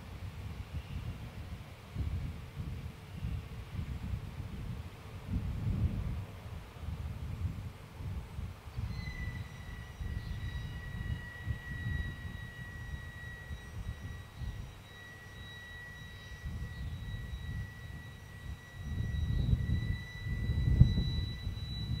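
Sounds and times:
wind and sea rumble on microphone: 0.0 - 14.7, 16.4 - 22.0
thin high-pitched tone: 8.8 - 22.0.

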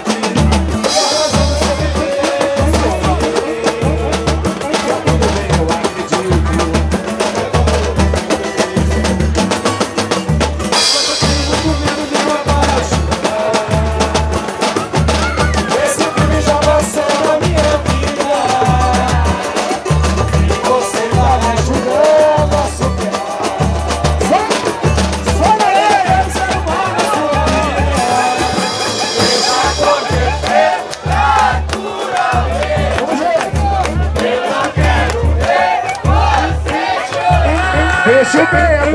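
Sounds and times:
deep drum beat: 0.0 - 38.9
hand percussion: 0.0 - 38.9.

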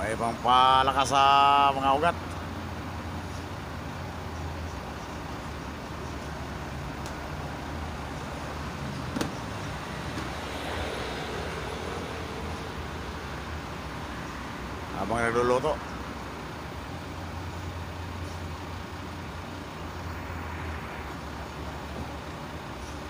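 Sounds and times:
road traffic noise: 0.0 - 23.0.

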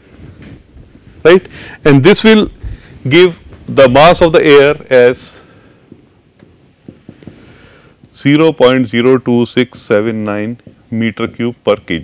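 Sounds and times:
marker writing on whiteboard: 3.8 - 12.0.

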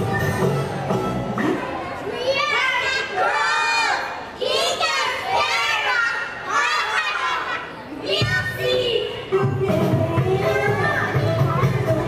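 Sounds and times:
backing music: 0.0 - 1.9, 8.2 - 12.0
young children singing together: 2.1 - 12.0.

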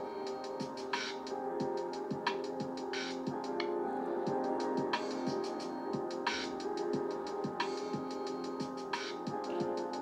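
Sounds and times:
fast ticking hi-hats: 0.0 - 3.6, 4.6 - 10.0
held chords: 0.0 - 10.0.

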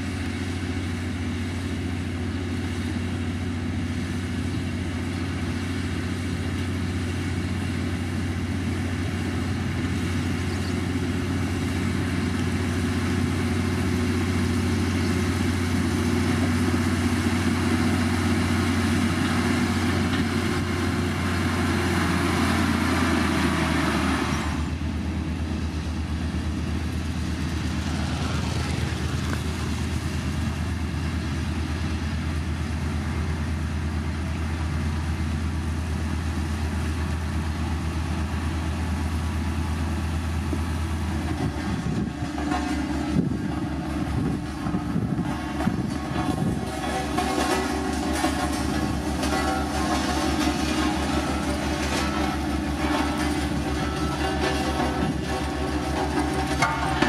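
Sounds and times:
diesel engine droning: 0.0 - 57.0
gravel scraping under blade: 41.2 - 57.0.

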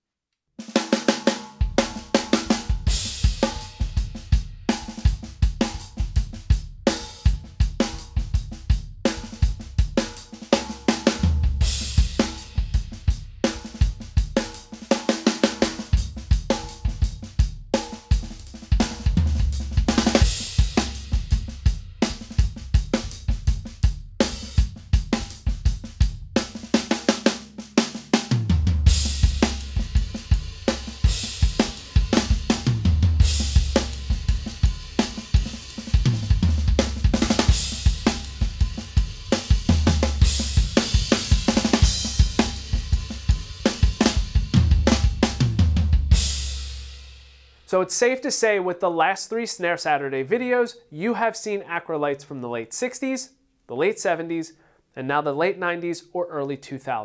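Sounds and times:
drum kit playing a groove: 0.6 - 47.6.

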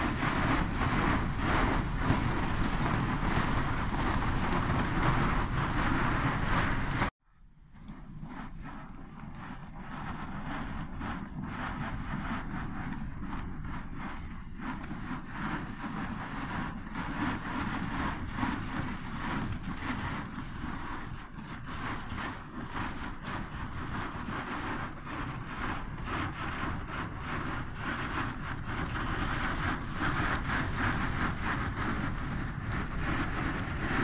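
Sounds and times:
boat pushing through ice: 0.0 - 7.1, 8.0 - 34.0
wind on microphone: 0.0 - 34.0.

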